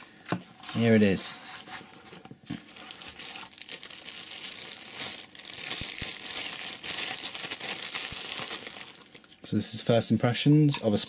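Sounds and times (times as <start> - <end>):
plastic wrapper crinkling: 2.0 - 9.4.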